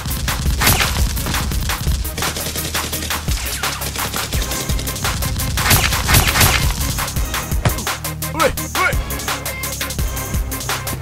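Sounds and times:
rapid gunfire: 0.0 - 8.0
music with heavy bass beat: 0.0 - 11.0.

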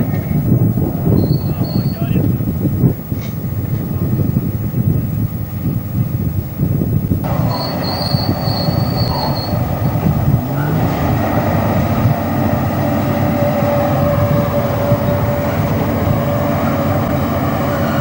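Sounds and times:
low machinery rumble: 0.0 - 18.0
lower steady metal squeal: 1.1 - 2.3, 7.2 - 18.0
high thin metal squeal: 7.4 - 9.6.

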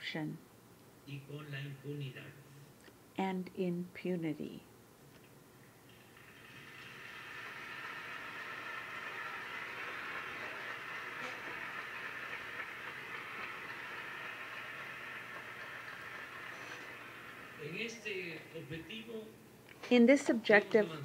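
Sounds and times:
audience applauding: 6.2 - 18.4.

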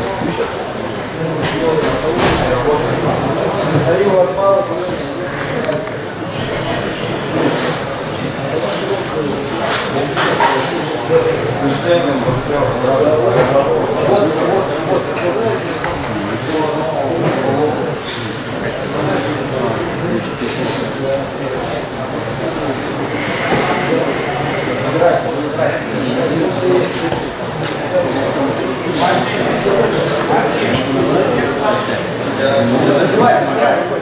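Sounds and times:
indistinct voices talking: 0.0 - 34.0.

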